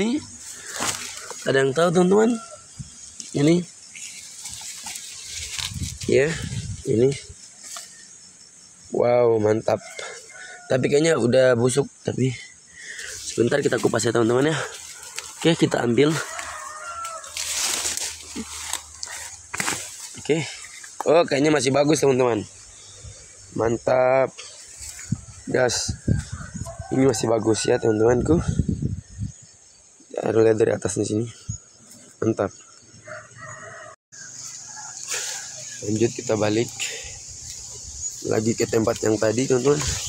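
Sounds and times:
leaves and vines rustling: 0.0 - 8.2, 12.8 - 23.6, 24.4 - 26.8, 34.2 - 40.0
rooster crowing: 1.4 - 2.9, 9.8 - 11.2, 15.5 - 18.0, 25.8 - 28.4, 33.0 - 35.8.

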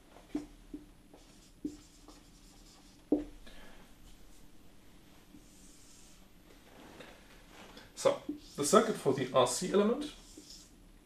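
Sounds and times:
marker strokes on whiteboard: 0.2 - 3.4, 5.3 - 6.3, 8.0 - 10.8
marker tip tapping whiteboard: 3.1 - 3.3.

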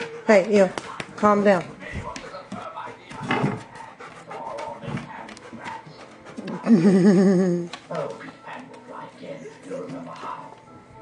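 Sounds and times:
dog panting: 0.0 - 10.6.

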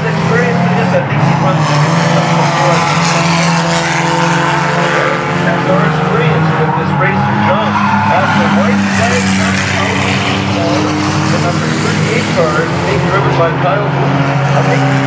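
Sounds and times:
racing car engines droning: 0.0 - 15.0.

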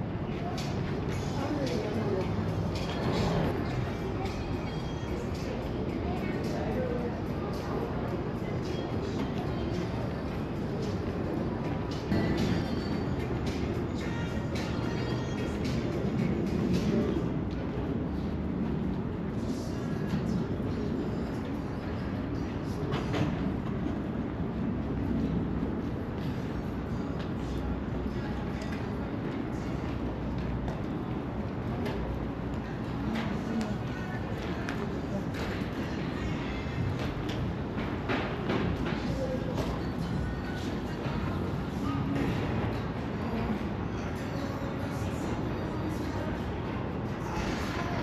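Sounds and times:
faint indistinct voices: 0.0 - 48.0
steady low rumble: 0.0 - 48.0.

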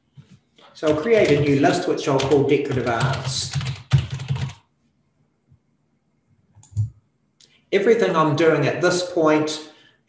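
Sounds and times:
typing on computer keyboard: 0.8 - 4.6, 6.6 - 6.9.

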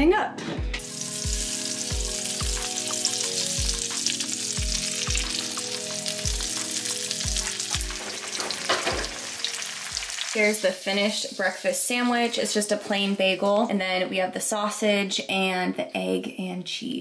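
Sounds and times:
background music with steady beat: 0.0 - 10.2
sausages sizzling in a frying pan: 0.8 - 12.7.

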